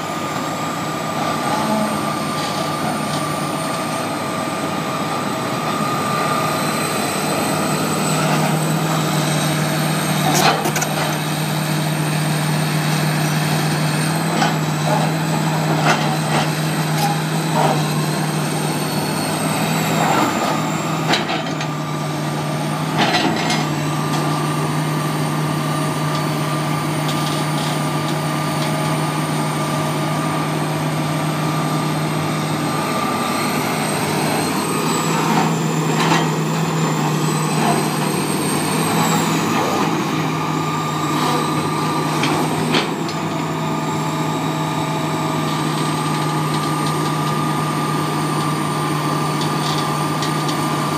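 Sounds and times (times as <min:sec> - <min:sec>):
excavator diesel engine running: 0:00.0 - 0:50.9
high hydraulic whine: 0:00.0 - 0:50.9.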